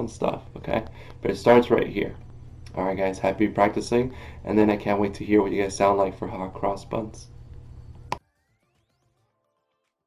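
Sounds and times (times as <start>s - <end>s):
faint sustained musical tones: 0.0s - 9.4s.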